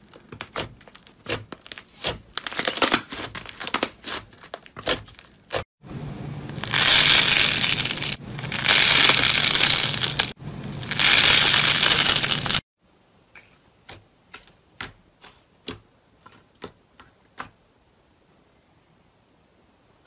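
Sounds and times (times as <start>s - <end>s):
foam slime crackling: 6.6s - 12.6s.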